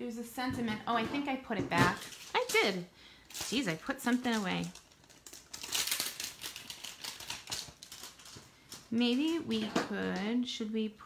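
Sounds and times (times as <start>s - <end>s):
plastic pouch crinkling: 1.9s - 9.7s.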